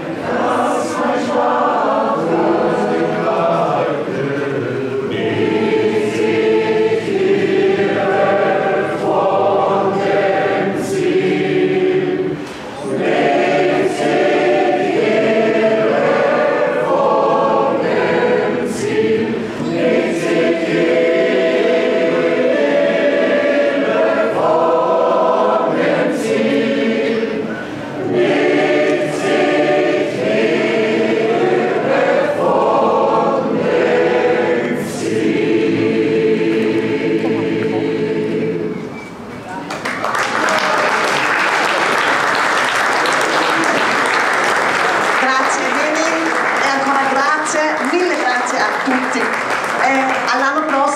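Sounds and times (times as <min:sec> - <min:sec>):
choir singing unaccompanied: 0:00.0 - 0:39.3.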